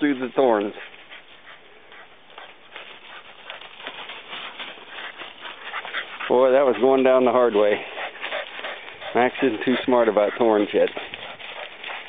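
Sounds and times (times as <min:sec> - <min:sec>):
dry leaves crunching underfoot: 0:02.3 - 0:09.0.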